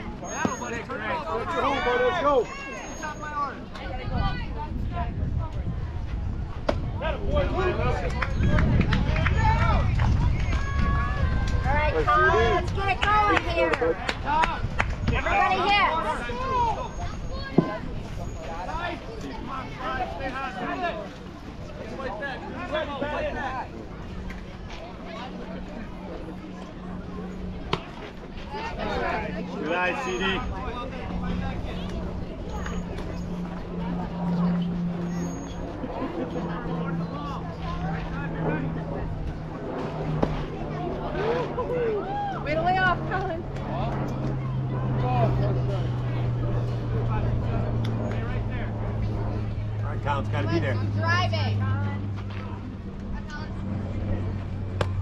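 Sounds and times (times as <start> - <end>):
faint distant voices: 0.0 - 55.0
steady low hum: 13.9 - 55.0.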